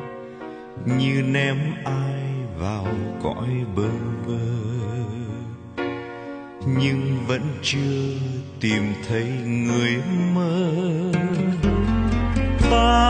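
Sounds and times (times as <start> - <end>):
slow instrumental ballad: 0.0 - 13.0.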